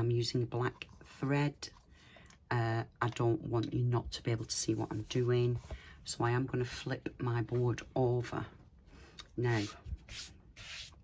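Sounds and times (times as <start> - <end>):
hand rubbing over board: 9.5 - 11.0.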